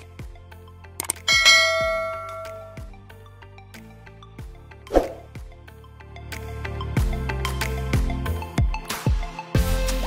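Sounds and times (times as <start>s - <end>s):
background music with steady beat: 0.0s - 10.0s
bright bell chime: 1.3s - 2.9s.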